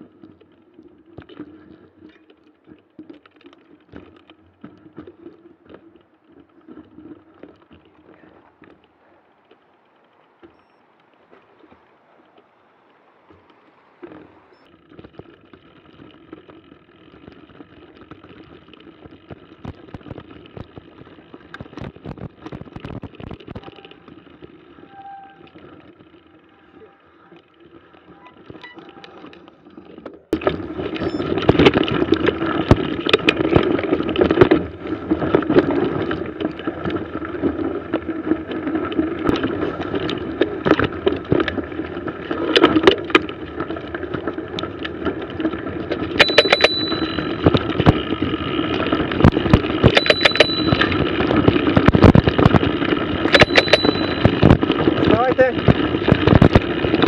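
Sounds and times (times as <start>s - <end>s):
mountain bike rattling on snow: 0.0s - 57.0s.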